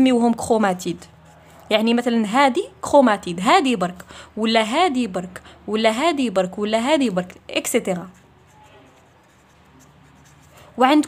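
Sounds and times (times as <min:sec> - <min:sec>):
woman talking: 0:00.0 - 0:08.2, 0:10.8 - 0:11.0
pen writing on paper: 0:07.8 - 0:11.0.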